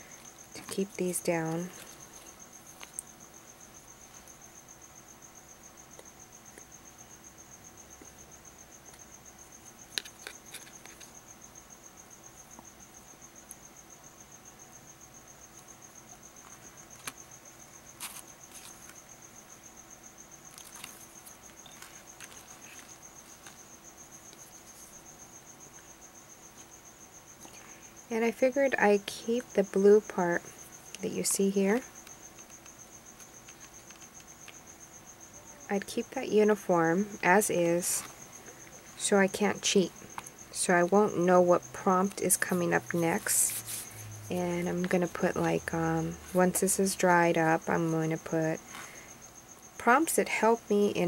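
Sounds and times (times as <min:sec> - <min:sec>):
insect chirring: 0:00.0 - 0:51.0.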